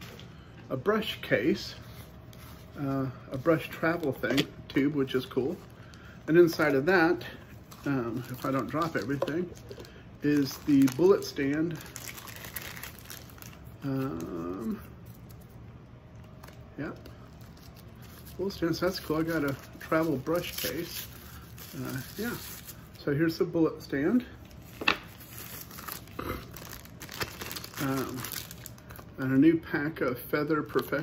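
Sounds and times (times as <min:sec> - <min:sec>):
packaging crinkling: 0:01.8 - 0:23.0, 0:24.4 - 0:29.1
person saying um: 0:13.8 - 0:14.9.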